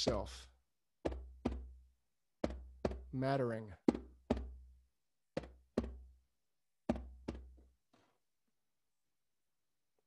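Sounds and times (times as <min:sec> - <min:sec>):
drum beats in heartbeat pattern: 0:01.1 - 0:01.8, 0:02.4 - 0:03.1, 0:03.9 - 0:04.7.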